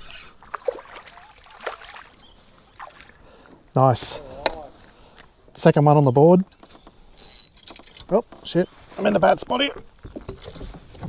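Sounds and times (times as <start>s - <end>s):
water splashing and trickling: 0.0s - 5.2s
short sharp splashes: 0.4s - 2.2s.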